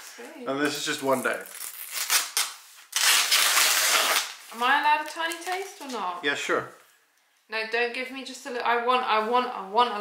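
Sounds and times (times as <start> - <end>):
plastic packaging rustling: 0.0 - 6.2
plastic packaging crackling and tearing: 0.7 - 6.0.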